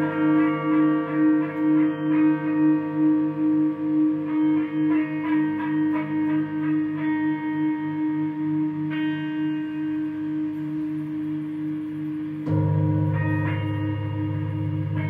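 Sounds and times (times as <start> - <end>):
electric guitar feedback: 0.0 - 15.0.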